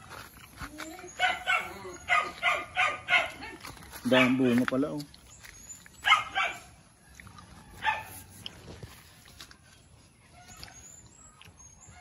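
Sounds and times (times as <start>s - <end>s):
dog barking: 1.2s - 4.6s, 6.0s - 6.8s, 7.8s - 8.2s.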